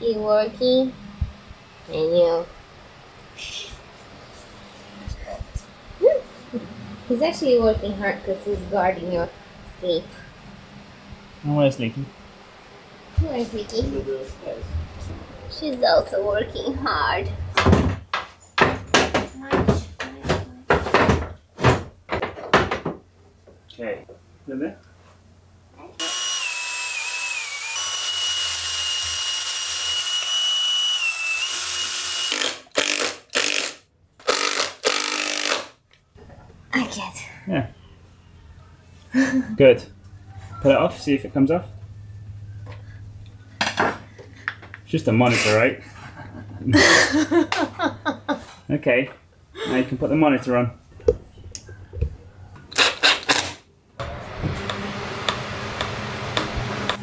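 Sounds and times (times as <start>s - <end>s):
steady low hum: 0.0s - 22.1s
cordless drill whining: 26.0s - 35.7s
drill driving screws into wood: 26.0s - 35.8s, 52.7s - 53.6s.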